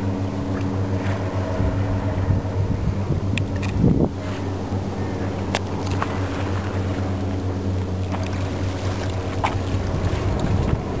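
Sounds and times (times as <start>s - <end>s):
low engine hum: 0.0s - 11.0s
wind rumble on microphone: 0.0s - 11.0s.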